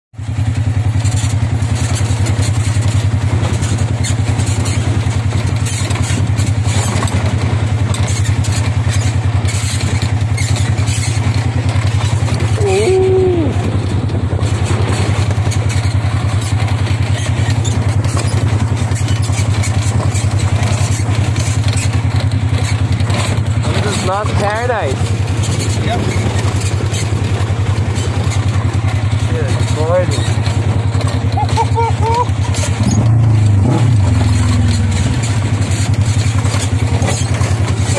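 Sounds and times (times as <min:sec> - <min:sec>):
off-road vehicle engine running: 0:00.1 - 0:37.9
knocks and rattles: 0:00.3 - 0:37.9.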